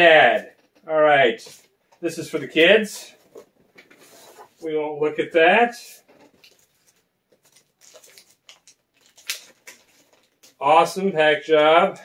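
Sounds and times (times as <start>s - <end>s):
plastic mailer bag rustling: 6.0s - 10.6s.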